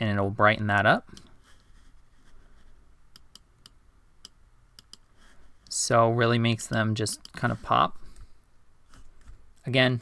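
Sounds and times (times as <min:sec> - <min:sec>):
computer mouse clicks: 0:03.1 - 0:05.1.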